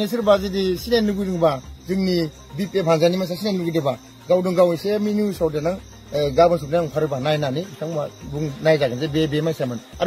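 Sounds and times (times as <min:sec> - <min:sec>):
crickets chirring: 0:00.0 - 0:10.0
man talking: 0:00.0 - 0:10.0.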